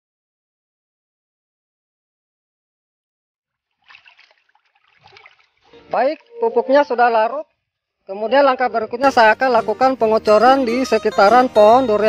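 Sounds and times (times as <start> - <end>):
water sloshing in plastic bucket: 3.6 - 6.5.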